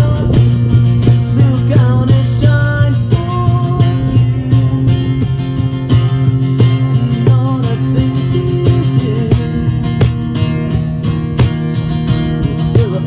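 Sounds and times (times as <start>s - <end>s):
acoustic guitar strumming: 0.0s - 13.0s
cajon slapped by hand: 10.0s - 10.4s, 11.4s - 11.8s.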